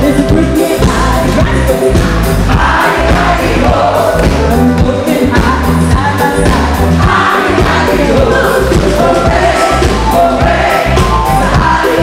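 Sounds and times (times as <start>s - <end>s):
drum and bass beat: 0.0s - 12.0s
live band playing: 0.0s - 12.0s
women singing together: 2.5s - 12.0s.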